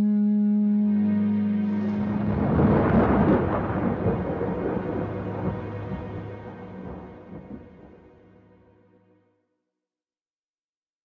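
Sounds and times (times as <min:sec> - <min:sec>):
soundtrack music: 0:00.0 - 0:09.2
thunder-like rumble: 0:01.8 - 0:08.2.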